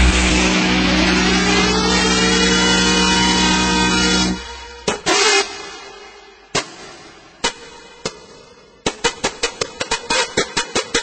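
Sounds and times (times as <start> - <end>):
faint rising synth line: 0.0 - 4.8.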